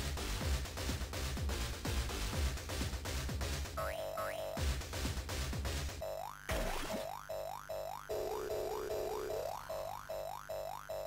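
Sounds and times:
techno synth music: 3.4s - 11.0s.

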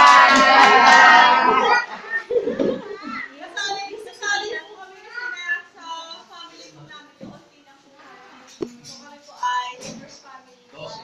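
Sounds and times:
small children chattering: 1.1s - 11.0s.

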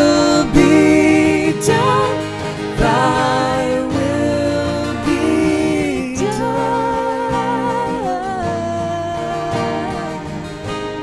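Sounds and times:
person singing a long wordless note: 0.0s - 10.4s
strummed acoustic guitar: 0.0s - 11.0s.

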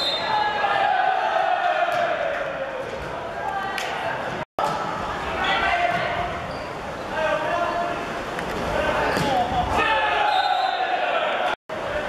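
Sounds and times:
players shouting and calling: 0.0s - 12.0s.

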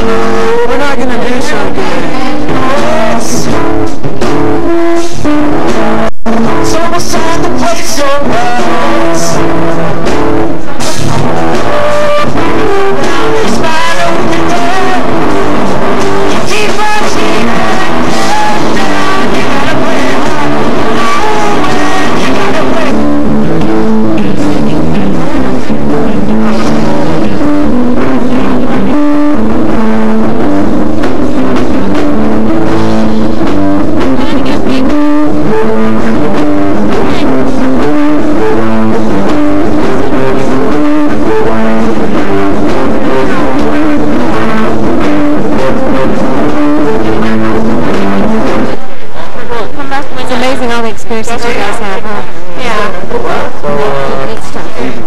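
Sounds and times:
live rock band music: 0.0s - 55.0s.

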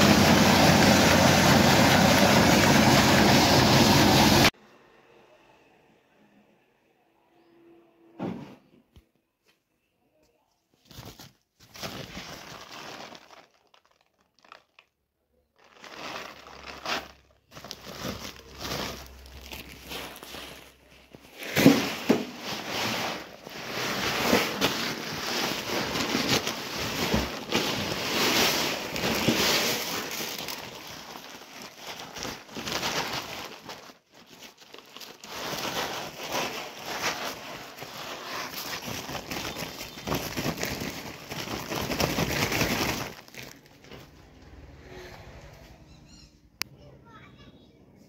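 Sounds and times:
grain pouring into hopper: 0.0s - 4.5s
plastic sack rustling: 0.0s - 4.5s, 10.7s - 44.4s.

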